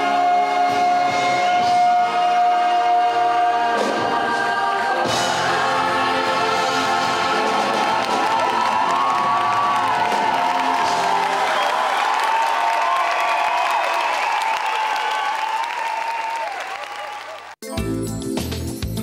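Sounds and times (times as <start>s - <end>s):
cast and choir singing: 0.0s - 11.1s
audience applauding: 6.7s - 17.6s.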